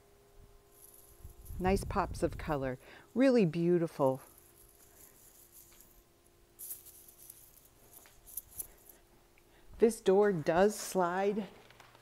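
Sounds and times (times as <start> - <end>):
faint steady hum: 0.0 - 12.0
soft rustles and scuffs: 4.2 - 9.0.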